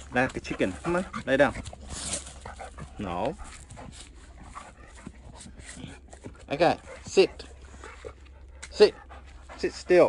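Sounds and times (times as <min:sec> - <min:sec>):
dog breathing and sniffing: 0:00.0 - 0:10.0.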